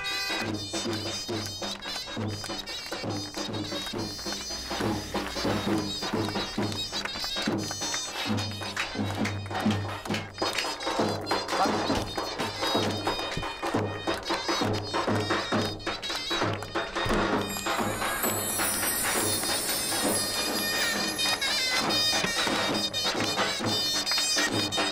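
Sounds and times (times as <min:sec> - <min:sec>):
big drum beat: 0:00.0 - 0:24.9
hands clapping along: 0:00.0 - 0:24.9
shrill reedy pipe melody: 0:00.0 - 0:24.9.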